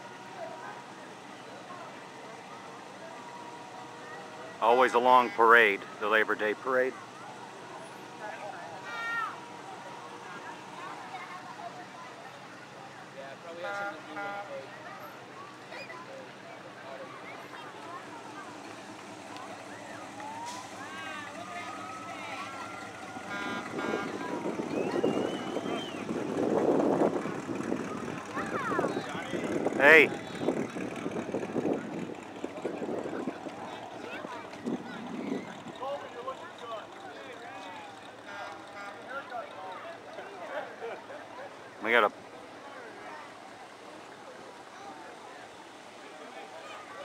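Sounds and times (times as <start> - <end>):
voices of onlookers: 0.0 - 47.0
vehicle passing: 16.7 - 47.0.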